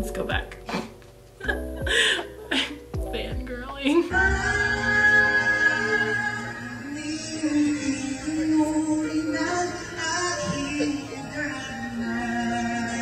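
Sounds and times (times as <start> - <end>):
instrumental accompaniment: 0.0 - 13.0.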